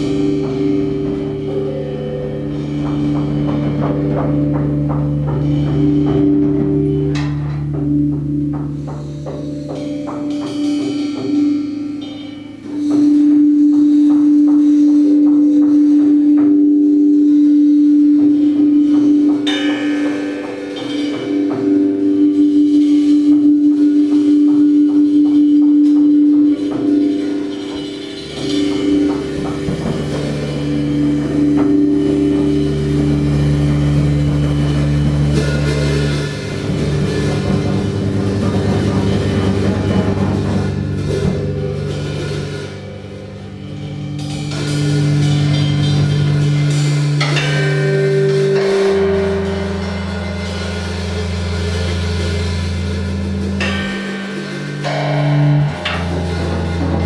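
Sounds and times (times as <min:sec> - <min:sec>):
rock band playing heavy riff: 0:00.0 - 0:57.0.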